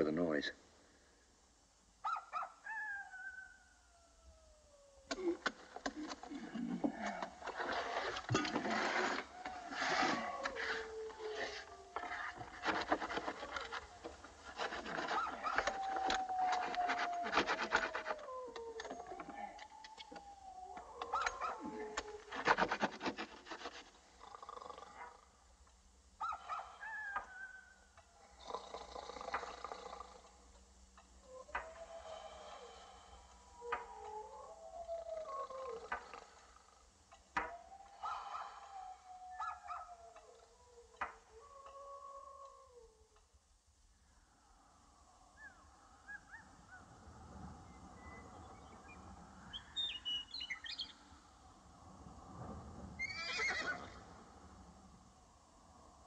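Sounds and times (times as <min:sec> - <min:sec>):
animals howling: 0:02.0 - 0:25.4, 0:26.2 - 0:30.5, 0:31.2 - 0:43.3, 0:44.0 - 0:51.8, 0:53.0 - 0:56.0
scratching and scraping at wall: 0:06.9 - 0:18.3, 0:21.8 - 0:24.1.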